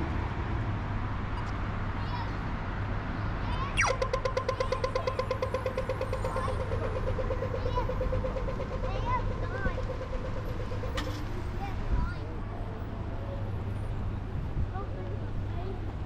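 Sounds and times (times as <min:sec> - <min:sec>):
traffic hum: 0:00.0 - 0:16.0
birds chirping: 0:03.7 - 0:11.2
falling laser sweep signal: 0:03.8 - 0:05.1
crossing signal rapid ticking: 0:03.8 - 0:11.8.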